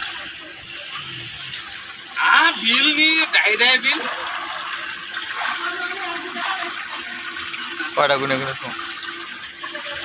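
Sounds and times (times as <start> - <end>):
water pouring from a pipe into tank: 0.0 - 10.0.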